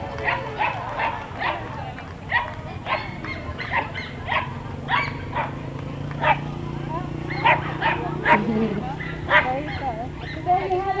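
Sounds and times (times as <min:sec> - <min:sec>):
people chattering: 0:00.0 - 0:11.0
dog barking: 0:00.2 - 0:01.7, 0:02.3 - 0:05.6, 0:06.2 - 0:06.4, 0:07.3 - 0:08.4, 0:09.0 - 0:10.6.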